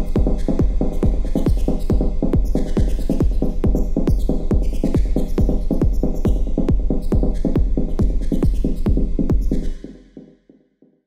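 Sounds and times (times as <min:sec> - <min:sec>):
kick drum: 0:00.0 - 0:09.6.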